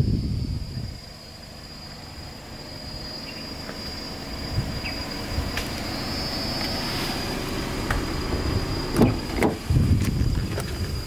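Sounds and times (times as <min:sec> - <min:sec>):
high insect drone: 0:00.0 - 0:11.0
car door thump opening: 0:07.8 - 0:11.0
car door handle and latch clacks: 0:09.0 - 0:10.8.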